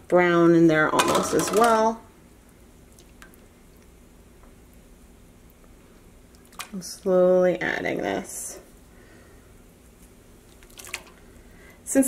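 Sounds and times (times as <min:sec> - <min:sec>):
low steady hum: 0:00.0 - 0:12.0
liquid drips and squishes: 0:02.4 - 0:04.0, 0:04.6 - 0:06.8, 0:10.4 - 0:11.4.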